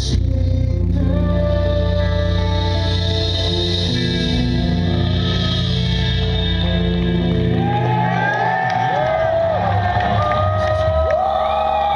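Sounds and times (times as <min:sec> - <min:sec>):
crowd cheering and whistling: 0:04.9 - 0:11.9.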